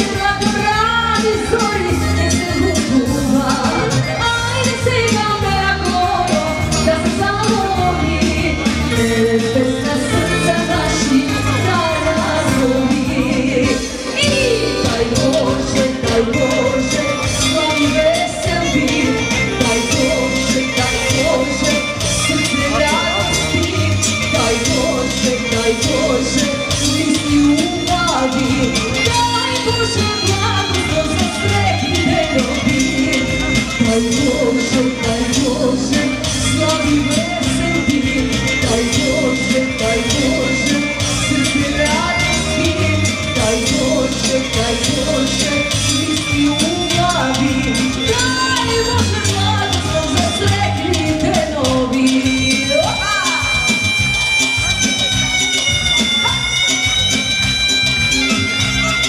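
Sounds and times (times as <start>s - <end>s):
drums: 0.0s - 59.0s
keyboard bass: 0.0s - 59.0s.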